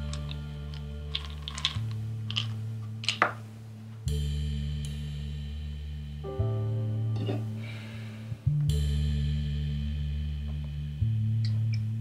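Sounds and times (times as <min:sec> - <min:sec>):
pills rattling in plastic bottle: 0:00.0 - 0:03.4
low musical drone: 0:00.0 - 0:12.0.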